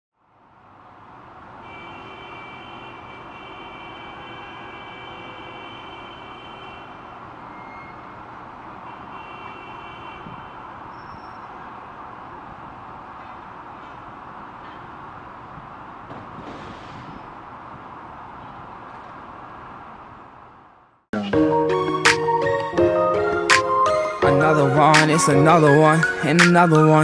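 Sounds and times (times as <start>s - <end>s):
distant traffic noise: 0.2s - 27.0s.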